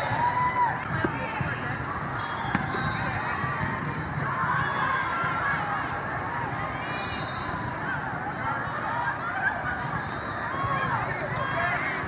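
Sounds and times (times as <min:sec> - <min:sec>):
crowd babble and calls: 0:00.0 - 0:12.0
volleyball being struck: 0:02.5 - 0:02.9.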